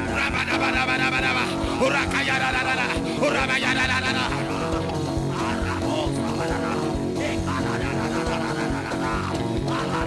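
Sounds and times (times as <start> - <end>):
church band music: 0.0 - 10.0.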